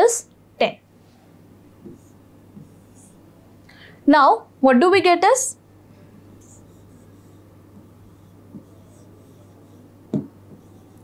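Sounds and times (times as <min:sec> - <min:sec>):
low steady hum: 0:00.0 - 0:11.0
stylus scratching on whiteboard: 0:01.8 - 0:03.2, 0:06.4 - 0:11.0.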